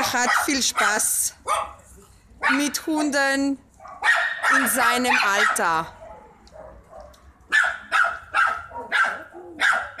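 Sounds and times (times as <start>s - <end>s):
dog barking: 0.1s - 1.8s, 2.4s - 2.8s, 3.8s - 10.0s.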